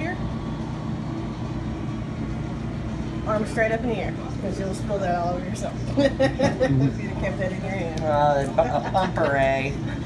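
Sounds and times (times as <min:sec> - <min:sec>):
low mechanical rumble: 0:00.0 - 0:10.0.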